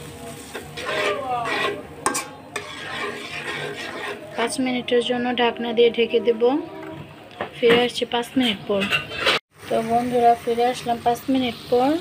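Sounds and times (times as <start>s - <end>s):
light sizzle: 0.0s - 4.2s, 9.5s - 12.0s
metal spatula scraping a pan: 0.3s - 6.4s, 8.4s - 9.4s.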